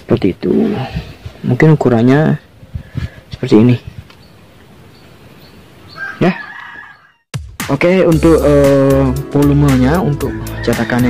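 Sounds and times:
rooster crowing: 5.9 - 7.3, 10.2 - 11.0.

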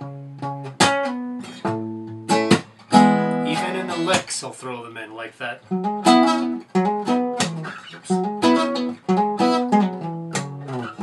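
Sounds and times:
fingerpicked acoustic guitar: 0.0 - 11.0
thumb slaps on guitar string: 2.4 - 2.8, 7.4 - 7.7, 10.3 - 10.7.

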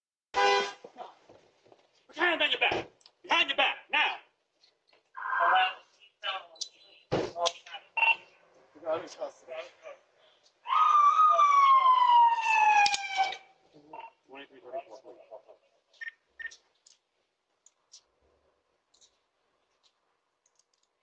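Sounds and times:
people talking: 2.1 - 4.3, 5.2 - 10.0, 13.7 - 15.8
police siren wail: 10.7 - 13.5.

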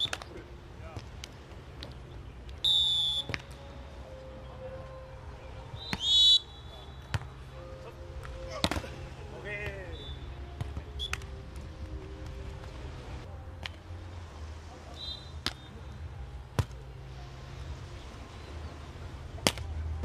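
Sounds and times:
hands slapping volleyball: 0.0 - 0.4, 8.2 - 9.0, 10.6 - 12.7, 13.6 - 13.8, 15.4 - 15.7, 16.6 - 16.8, 19.4 - 19.7
referee's whistle blasts: 2.6 - 3.3, 5.8 - 7.1, 9.9 - 10.3, 14.9 - 15.8.

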